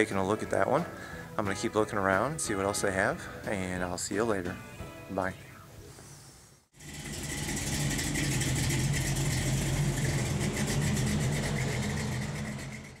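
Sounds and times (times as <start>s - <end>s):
vehicle engine idling: 6.8s - 13.0s.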